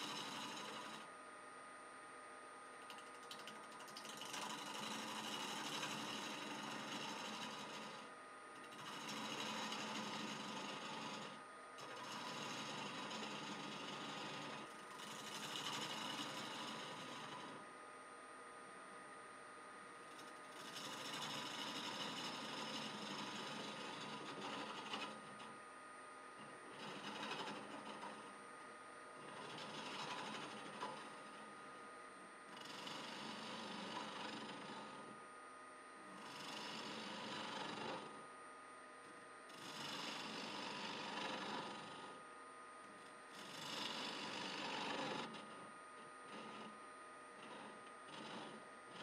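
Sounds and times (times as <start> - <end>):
gouge cutting wood on lathe: 0.0 - 1.1, 3.4 - 17.6, 20.2 - 25.5, 26.4 - 28.3, 29.2 - 31.5, 32.6 - 35.2, 43.4 - 45.7, 46.3 - 46.8, 47.4 - 49.0
wood lathe running: 0.0 - 1.1, 2.9 - 17.7, 20.1 - 25.6, 26.4 - 28.4, 29.2 - 31.7, 32.5 - 35.2, 36.1 - 38.2, 39.6 - 42.2, 43.4 - 45.7, 46.3 - 46.8, 47.4 - 49.0.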